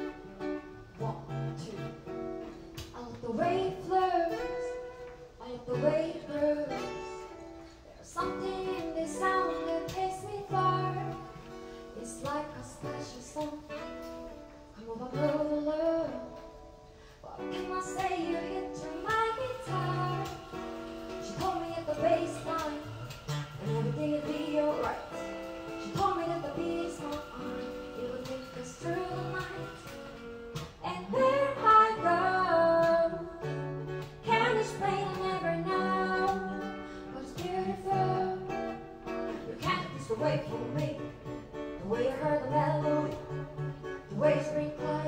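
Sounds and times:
acoustic guitar accompaniment: 0:00.0 - 0:45.0
woman singing: 0:00.0 - 0:45.0.

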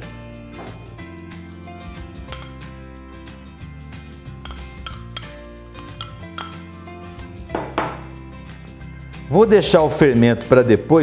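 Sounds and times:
background music: 0:00.0 - 0:11.0
utensil scraping mixing bowls: 0:02.3 - 0:03.0, 0:04.3 - 0:06.8.

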